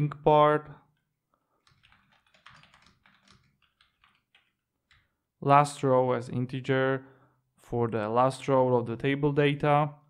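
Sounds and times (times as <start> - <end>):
faint typing on computer keyboard: 0.9 - 5.2.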